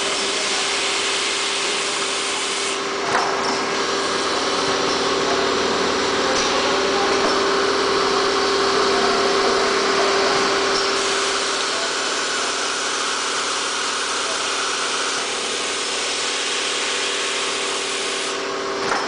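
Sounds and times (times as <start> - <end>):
machine humming with hiss: 0.0 - 19.0.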